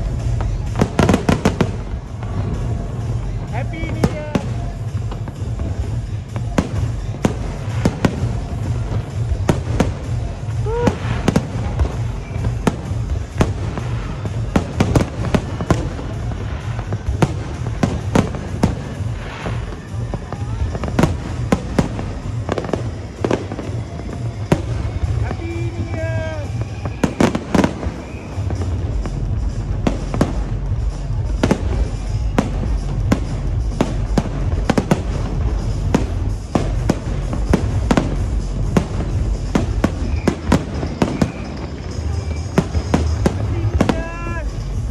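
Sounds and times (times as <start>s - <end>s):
fireworks bangs and crackles: 0.0s - 44.9s.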